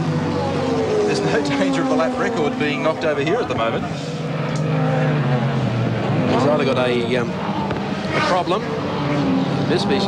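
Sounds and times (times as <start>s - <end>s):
racing car engines passing: 0.0s - 10.0s.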